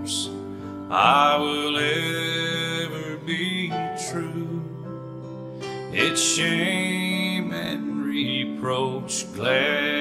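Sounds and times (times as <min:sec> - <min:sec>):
person singing a hymn: 0:00.0 - 0:05.0, 0:05.6 - 0:10.0
acoustic guitar: 0:00.0 - 0:10.0.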